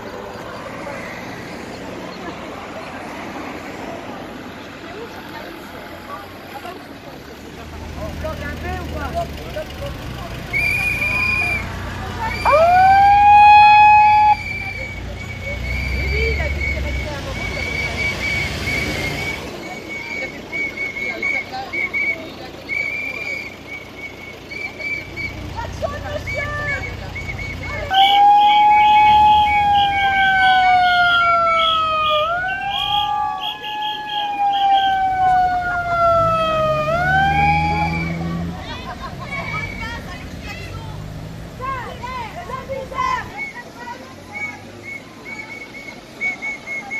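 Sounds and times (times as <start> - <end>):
car engine running: 5.8 - 12.8
high whistle-like tones: 10.5 - 12.7, 13.6 - 30.4, 31.1 - 35.1, 37.4 - 38.3, 44.3 - 46.9
megaphone siren wail: 12.4 - 14.5, 27.9 - 38.2.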